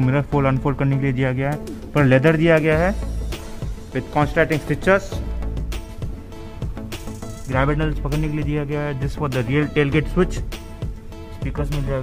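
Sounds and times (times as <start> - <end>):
man talking: 0.0 - 3.2, 3.8 - 5.4, 7.4 - 10.5, 11.4 - 12.0.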